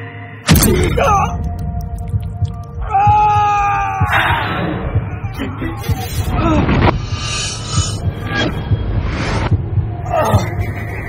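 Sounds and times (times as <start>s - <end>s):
low heartbeat-like pulse: 0.5s - 11.0s.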